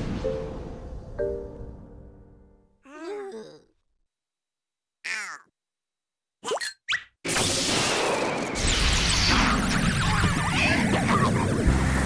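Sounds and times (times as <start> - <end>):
rushing magic blast: 7.3 - 12.0.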